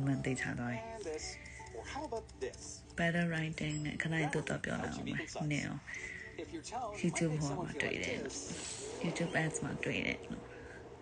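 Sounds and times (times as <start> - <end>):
woman's voice: 0.0 - 1.0, 3.0 - 6.0, 7.0 - 10.6.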